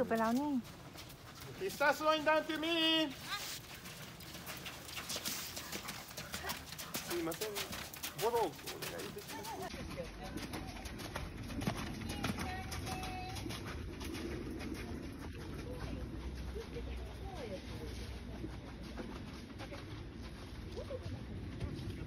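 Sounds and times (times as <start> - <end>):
horse hoofbeats on sand: 0.0 - 22.0.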